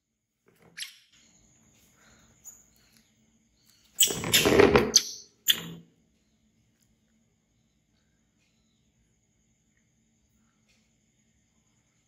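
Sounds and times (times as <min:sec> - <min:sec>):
baby monkey screaming: 0:04.0 - 0:05.7.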